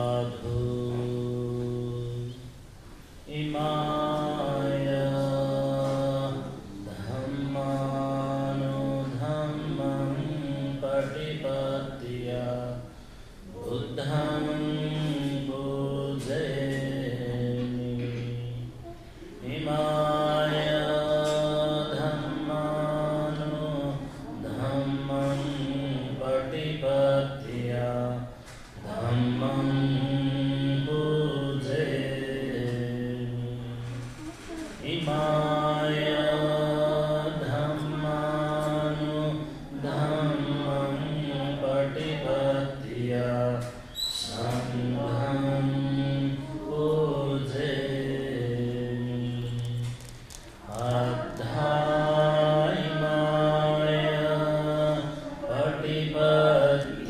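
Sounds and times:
man chanting: 3.3s - 12.9s.

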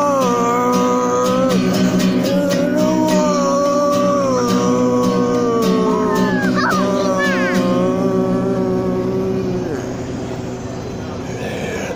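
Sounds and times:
man singing long note: 0.0s - 9.9s
acoustic guitar chord: 0.0s - 11.8s.

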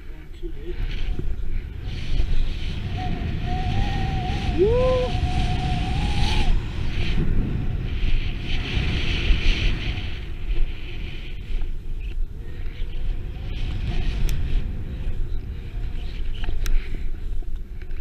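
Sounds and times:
wind rumbling on microphone: 0.0s - 18.0s
snowboard carving through snow: 0.7s - 17.1s.

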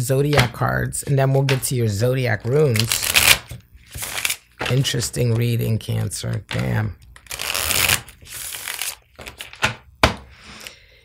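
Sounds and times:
cards tapping: 0.2s - 1.8s.

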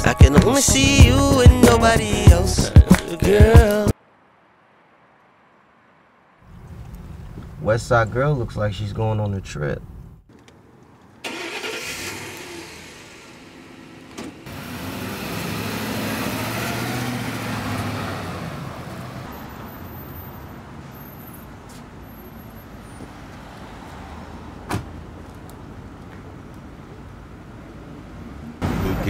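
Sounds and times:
van driving past: 11.2s - 21.4s.

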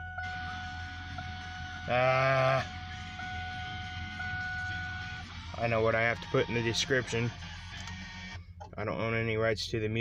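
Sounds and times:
repeating electronic tone: 0.0s - 7.3s
low steady hum: 0.0s - 10.0s.

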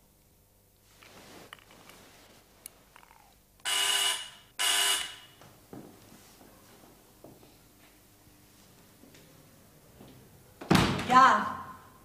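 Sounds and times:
electric doorbell buzzing: 3.6s - 5.4s.

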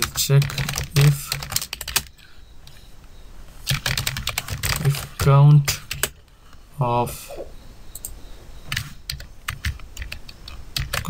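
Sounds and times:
computer keyboard keys clicking: 0.0s - 2.1s, 3.7s - 5.2s, 5.8s - 6.2s, 8.0s - 11.0s.

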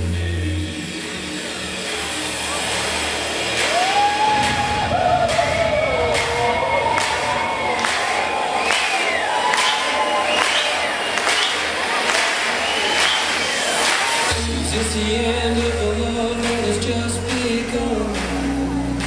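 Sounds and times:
crowd cheering: 0.0s - 19.0s
trance music over club speakers: 0.0s - 19.0s
gliding whistle-like tones: 3.6s - 14.3s.

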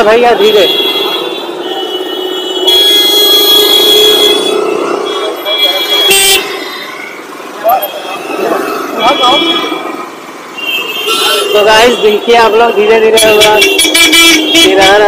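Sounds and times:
steady engine hum: 0.0s - 12.3s
vehicle horns honking: 0.2s - 6.9s, 7.6s - 9.9s, 10.6s - 15.0s.

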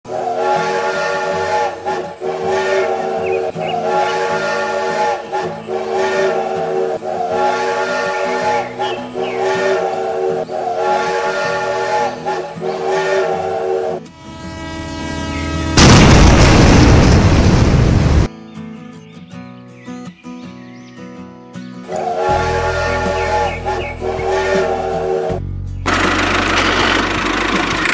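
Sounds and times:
steam train whistle and chugging: 0.1s - 16.2s, 21.9s - 27.9s
loud crash-like burst: 15.7s - 18.3s.

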